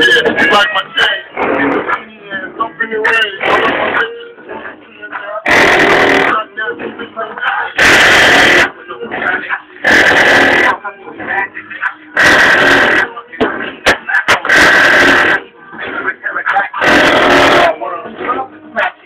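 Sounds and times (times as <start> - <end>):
loud music on car stereo: 0.0 - 19.0
distorted heavy bass hits: 1.3 - 2.0, 3.4 - 4.1, 5.5 - 6.4, 7.8 - 8.8, 12.2 - 16.0, 16.8 - 17.8.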